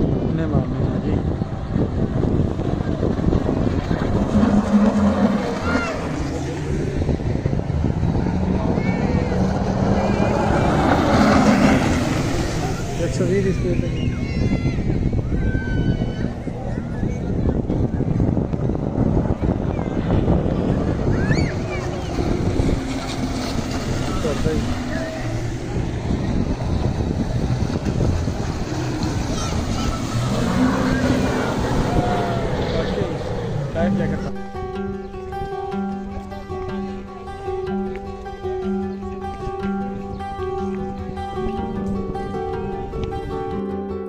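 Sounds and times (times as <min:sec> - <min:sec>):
watercraft engine running: 0:00.0 - 0:43.5
rushing water: 0:00.0 - 0:43.7
wind noise on microphone: 0:00.0 - 0:44.0.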